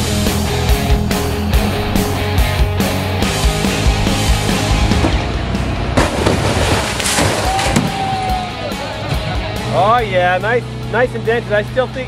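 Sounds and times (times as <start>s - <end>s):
loud rock music: 0.0s - 12.0s
refrigerator crashing onto ground: 6.0s - 8.4s.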